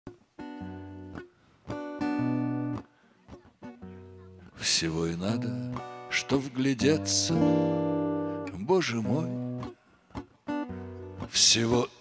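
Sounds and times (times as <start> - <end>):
acoustic guitar chords: 0.1 - 12.0.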